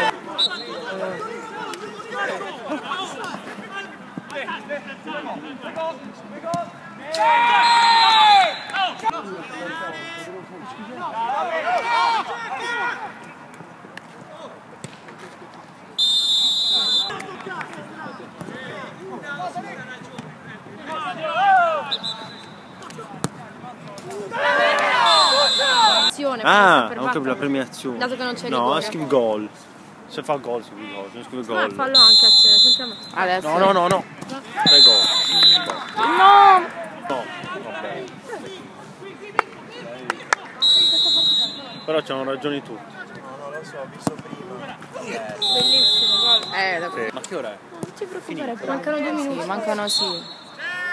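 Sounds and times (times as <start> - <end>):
players shouting: 0.0 - 13.4, 16.0 - 26.2, 31.6 - 47.1, 48.8 - 50.9
shrill whistle blast: 16.0 - 17.2, 21.9 - 22.6, 25.0 - 26.1, 32.0 - 33.2, 34.7 - 35.8, 40.6 - 42.0, 45.4 - 46.7, 49.9 - 50.6
ball kicks: 44.0 - 44.4
man shouting: 50.6 - 50.9.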